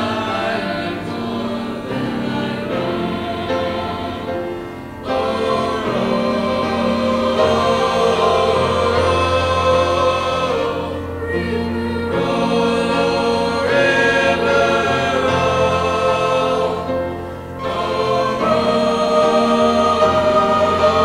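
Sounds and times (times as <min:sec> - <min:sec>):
choir singing held chords: 0:00.0 - 0:21.0.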